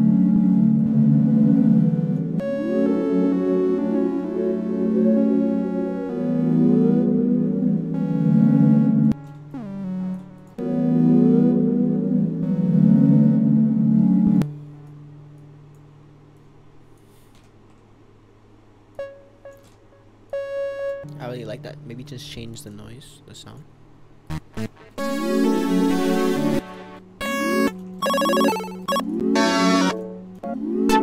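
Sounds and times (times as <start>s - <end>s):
synthesizer keyboard melody: 0.0s - 14.9s, 19.0s - 22.3s, 24.3s - 31.0s
single synthesizer notes: 24.3s - 30.2s.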